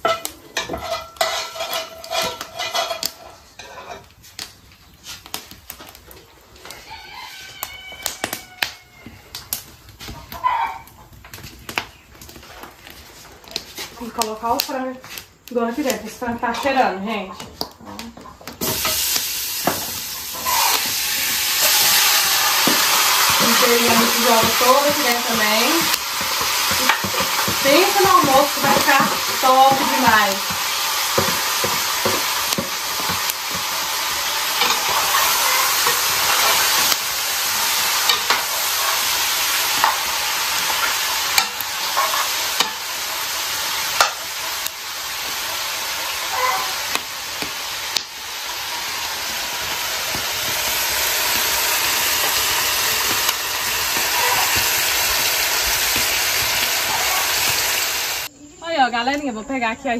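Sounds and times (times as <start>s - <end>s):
chicken sizzling in a pot: 0.0s - 58.3s
metal spoon scraping a pot: 0.1s - 4.1s, 20.3s - 42.8s.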